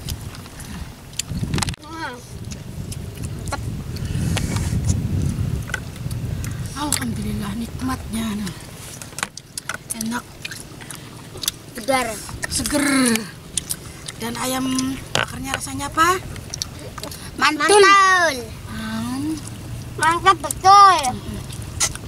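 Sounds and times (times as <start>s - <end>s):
steady low rumble: 0.0s - 22.0s
child's voice: 1.8s - 2.3s, 16.8s - 19.4s, 20.0s - 21.5s
clicks and rustles of eating: 8.9s - 17.2s
person's voice: 16.8s - 19.4s, 20.0s - 21.5s.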